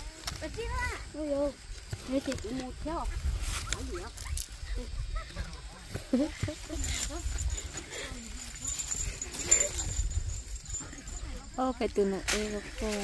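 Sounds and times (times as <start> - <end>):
woman's stifled laughter: 4.7 - 7.3.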